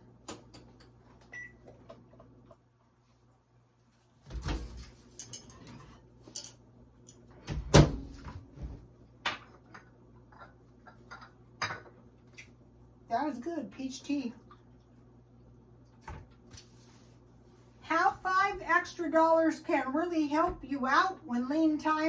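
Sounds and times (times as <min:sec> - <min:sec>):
microwave door opening and shutting: 0:07.4 - 0:08.2.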